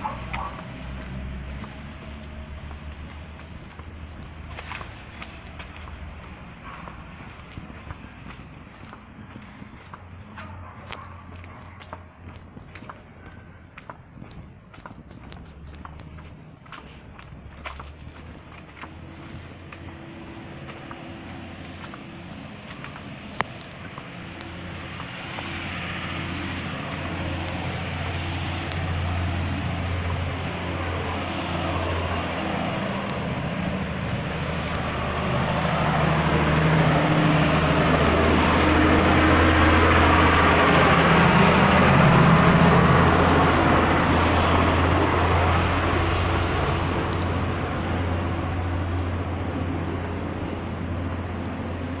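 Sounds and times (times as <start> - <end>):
vehicle engine passing: 0.0 - 52.0.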